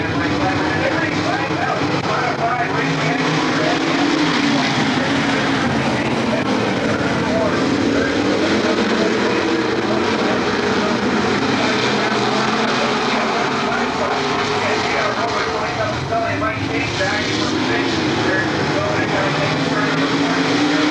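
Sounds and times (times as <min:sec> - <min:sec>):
race car engines droning: 0:00.0 - 0:20.9.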